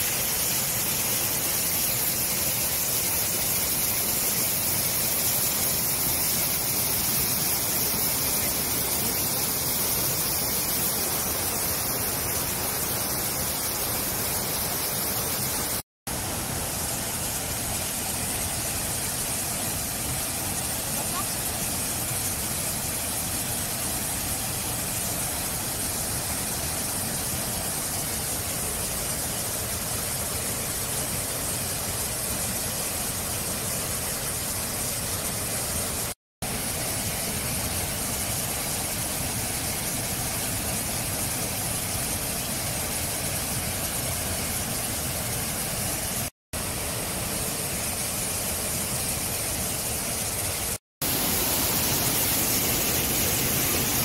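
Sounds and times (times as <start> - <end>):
high-pressure water jet hissing: 0.0 - 54.0.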